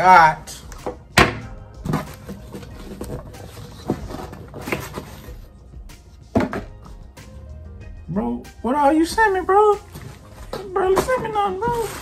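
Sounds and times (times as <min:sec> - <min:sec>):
faint background music: 0:00.0 - 0:12.0
box being handled and opened: 0:01.8 - 0:05.5, 0:09.9 - 0:12.0.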